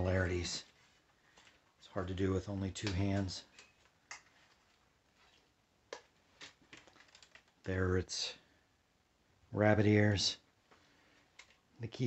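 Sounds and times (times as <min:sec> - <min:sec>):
typewriter clicks and rattles: 0:06.8 - 0:07.6.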